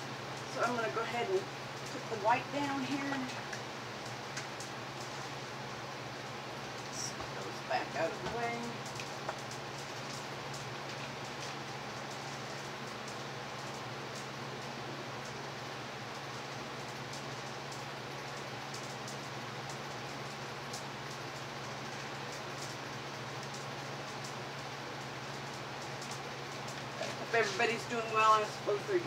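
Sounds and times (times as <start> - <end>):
fans and air conditioning hiss: 0.0 - 29.0.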